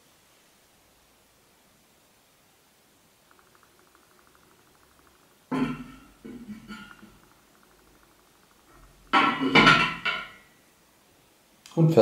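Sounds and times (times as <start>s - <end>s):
lid clattering on metal keg: 5.5s - 7.2s, 8.6s - 10.4s.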